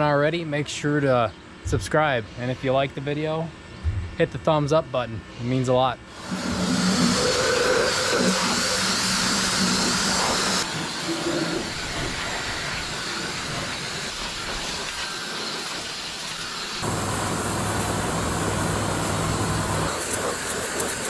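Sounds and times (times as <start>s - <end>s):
pressure washer spraying water: 6.2s - 21.0s.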